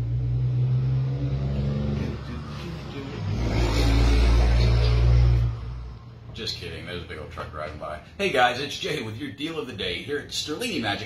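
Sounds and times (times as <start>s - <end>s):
truck engine driving past: 0.0s - 8.1s.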